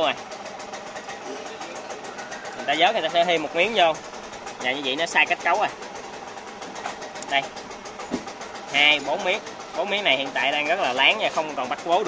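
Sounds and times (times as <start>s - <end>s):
fast even ticking: 0.0s - 12.0s
small engine idling: 0.0s - 12.0s.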